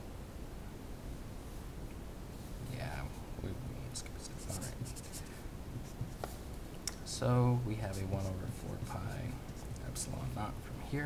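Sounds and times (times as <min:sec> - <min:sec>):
marker pen writing on paper: 0:04.0 - 0:06.4, 0:07.8 - 0:10.3.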